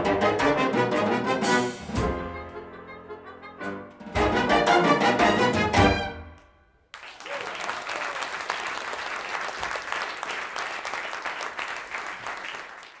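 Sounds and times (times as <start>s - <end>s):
audience applauding: 6.9s - 13.0s.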